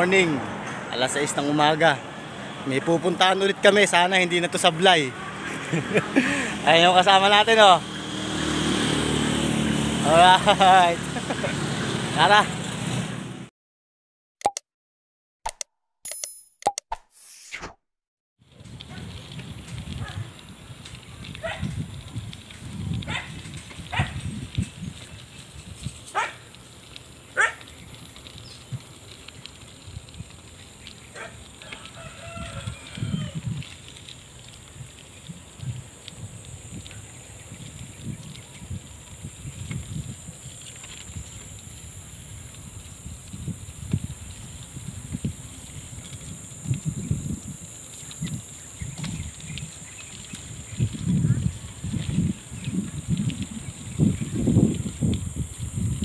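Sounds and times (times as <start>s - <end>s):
bicycle road noise: 0.0s - 13.5s, 18.4s - 56.0s
wind rumble: 18.5s - 56.0s
rooster crowing: 31.6s - 33.5s.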